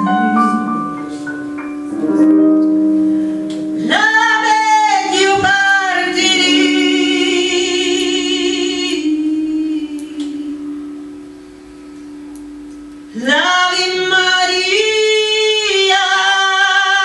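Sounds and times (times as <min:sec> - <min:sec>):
piano accompaniment: 0:00.0 - 0:09.6
woman singing: 0:03.8 - 0:10.9, 0:13.1 - 0:17.0.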